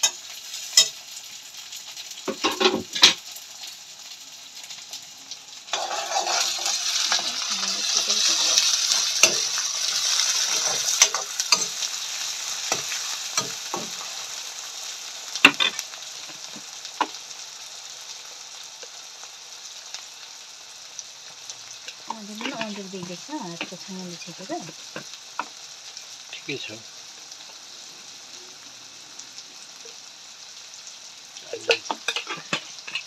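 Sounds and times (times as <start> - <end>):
food sizzling in hot oil: 0.0 - 33.0.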